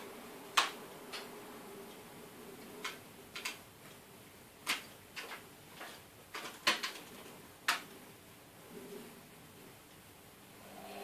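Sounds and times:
sharp plastic clicks: 0.5s - 1.3s, 2.7s - 3.7s, 4.6s - 8.0s.

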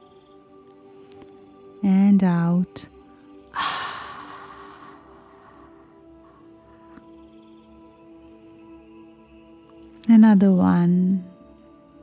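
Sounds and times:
ambient drone music: 0.0s - 12.0s
breathy exhale: 3.6s - 6.9s.

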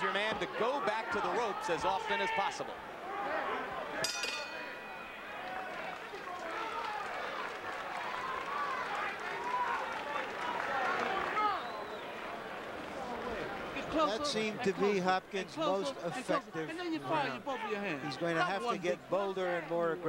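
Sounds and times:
arena crowd voices: 0.0s - 20.0s
boxing ring bell: 4.0s - 5.3s.

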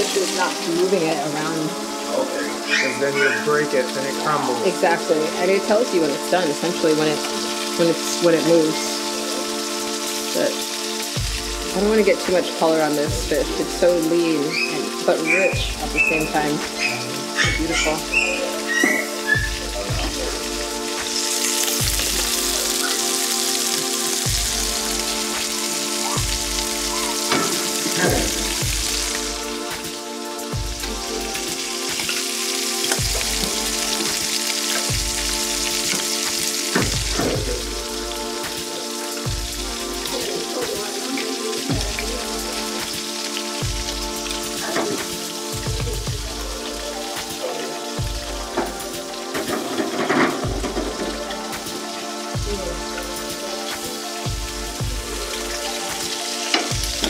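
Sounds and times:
fish sizzling in frying pans: 0.0s - 57.0s
background music with bass pulse: 8.8s - 57.0s.

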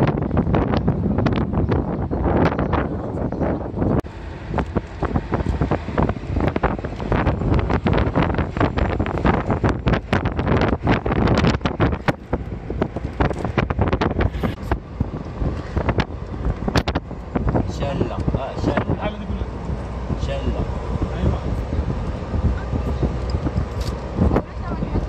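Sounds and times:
car driving rumble: 0.0s - 25.0s
wind buffeting microphone: 0.0s - 25.0s.

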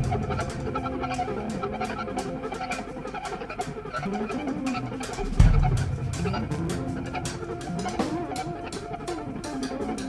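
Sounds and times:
faint cymbal ticks: 0.0s - 10.0s.

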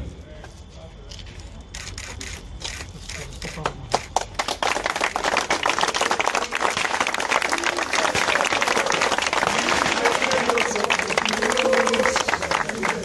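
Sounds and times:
crowd applauding: 3.6s - 13.0s.

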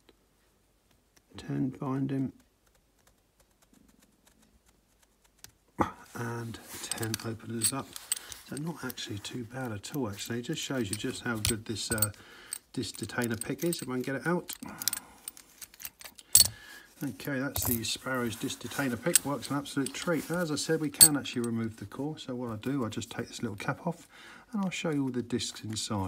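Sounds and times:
small metallic clicks: 6.9s - 9.0s, 10.8s - 16.6s, 21.0s - 21.6s
small lock pick clicks: 14.5s - 16.6s.

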